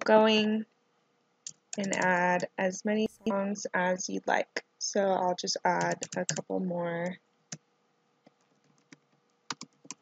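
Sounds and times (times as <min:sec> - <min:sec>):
computer keyboard typing: 0:01.4 - 0:02.3, 0:05.6 - 0:07.2, 0:08.3 - 0:10.0.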